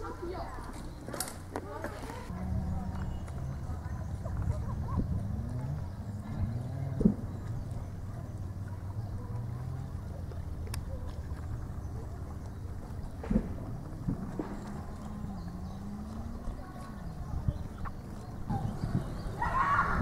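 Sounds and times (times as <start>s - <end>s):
voices: 0.0s - 20.0s
low steady rumble: 2.3s - 20.0s.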